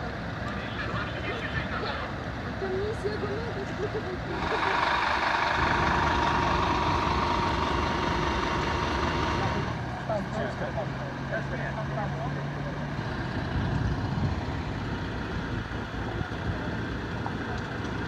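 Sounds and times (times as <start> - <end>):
faint voices: 0.0 - 5.2, 15.0 - 18.0
engine idling with whine: 0.0 - 18.0
street noise: 0.0 - 18.0.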